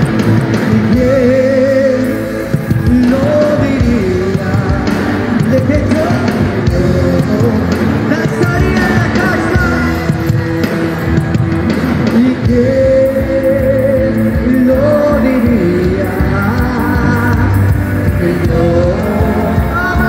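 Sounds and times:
person singing: 0.0 - 10.6, 11.6 - 20.0
live band playing: 0.0 - 20.0.

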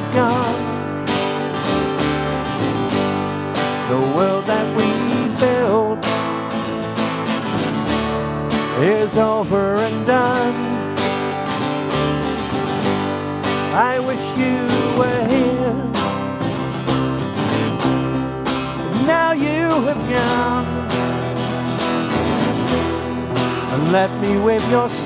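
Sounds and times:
acoustic bass guitar: 0.0 - 25.0
acoustic guitar strumming: 0.0 - 25.0.

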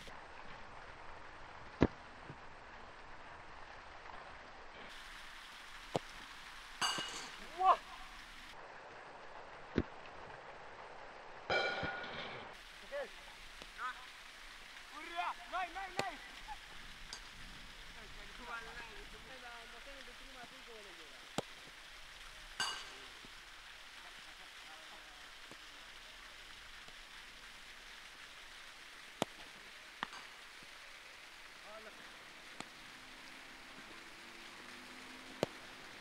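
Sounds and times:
steady outdoor hiss: 0.0 - 36.0
person shouting: 7.5 - 8.0.

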